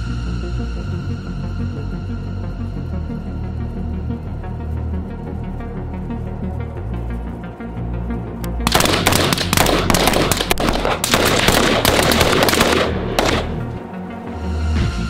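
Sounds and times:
background music: 0.0s - 15.0s
rapid rifle fire: 8.6s - 13.8s.

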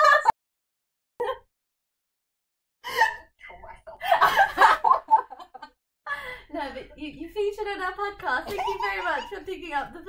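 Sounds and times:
woman gasping with laughter: 2.8s - 3.3s.

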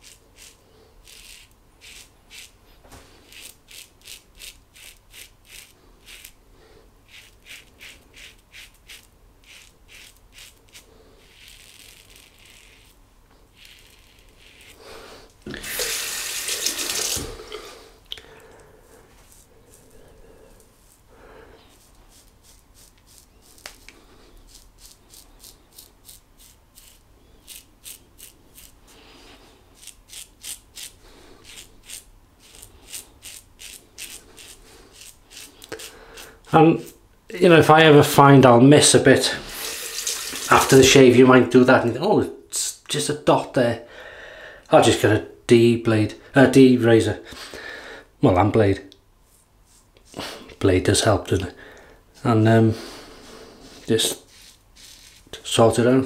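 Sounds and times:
razor scraping stubble: 0.0s - 6.4s, 7.1s - 17.2s, 19.1s - 20.0s, 21.7s - 29.0s, 29.7s - 37.0s, 53.2s - 55.9s.

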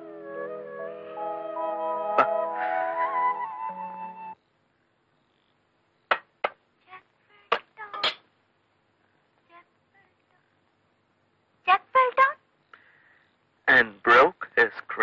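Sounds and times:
flute film score: 0.0s - 4.4s.

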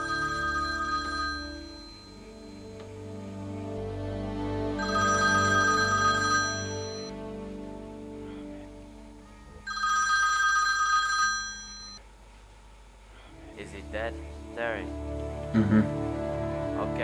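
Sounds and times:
mobile phone ringtone: 0.0s - 2.8s, 4.8s - 7.1s, 9.7s - 12.0s
soft background music: 0.0s - 12.0s, 13.2s - 17.0s.

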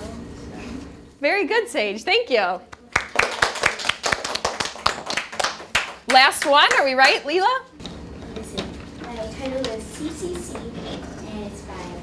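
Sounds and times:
children clapping: 2.7s - 7.4s.

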